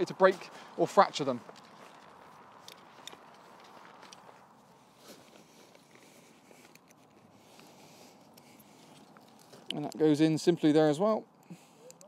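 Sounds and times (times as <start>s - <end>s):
tent poles clicking: 0.0s - 10.2s.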